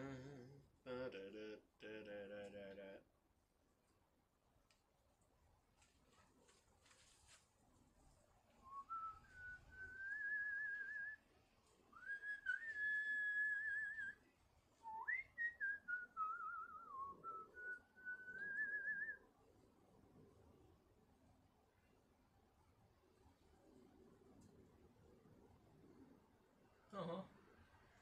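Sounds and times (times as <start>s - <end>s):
person whistling a tune: 8.6s - 11.2s, 12.0s - 14.2s, 14.8s - 19.2s.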